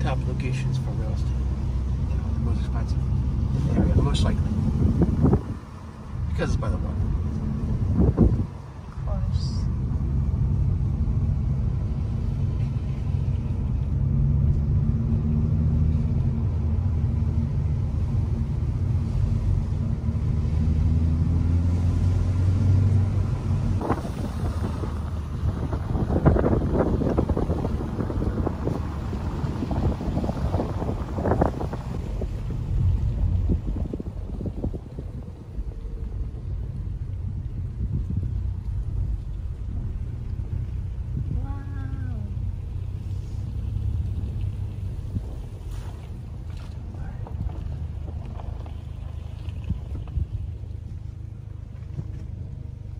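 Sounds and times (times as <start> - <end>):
car cabin engine and tyre hum: 0.0 - 52.9
wind buffeting microphone: 3.1 - 13.7, 22.1 - 52.9.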